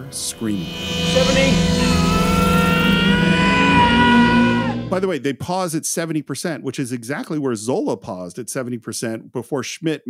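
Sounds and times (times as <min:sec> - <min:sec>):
low rumble: 0:00.0 - 0:05.1
sustained music chords: 0:00.0 - 0:05.1.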